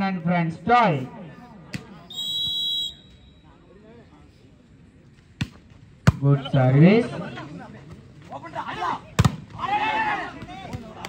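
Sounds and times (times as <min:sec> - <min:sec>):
referee's whistle blast: 0:02.1 - 0:03.5.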